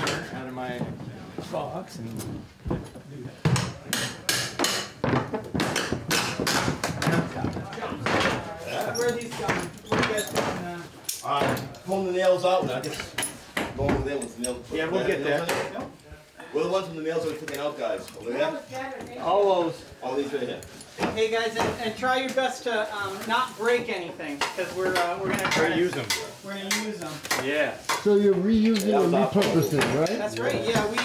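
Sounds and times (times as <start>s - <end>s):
hammer knocking on wooden floorboards: 2.6s - 8.5s
people talking: 27.5s - 31.0s.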